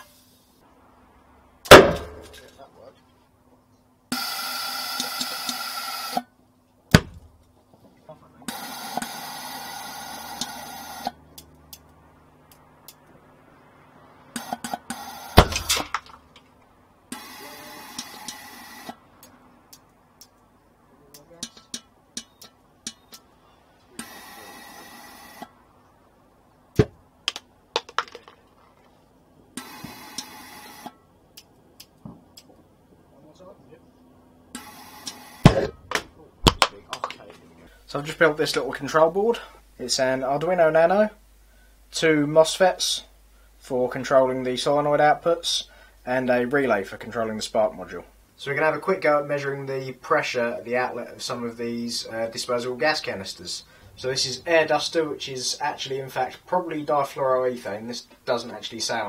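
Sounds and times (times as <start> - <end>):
combustion bangs: 1.7 - 2.5, 6.9 - 7.4.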